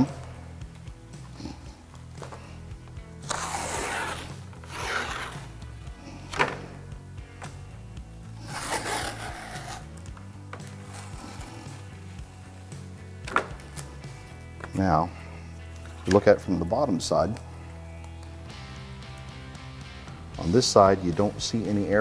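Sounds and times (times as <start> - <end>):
soft background music: 0.0 - 22.0
tape peeling off plexiglass: 3.2 - 6.9, 8.4 - 12.0.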